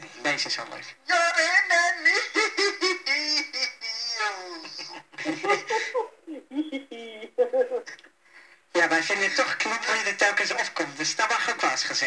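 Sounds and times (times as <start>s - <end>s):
high-pitched laughing: 1.6s - 7.4s.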